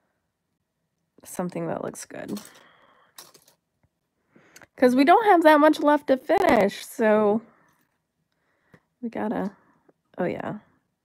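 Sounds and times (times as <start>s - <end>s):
metal jewelry clinking: 2.2s - 3.6s.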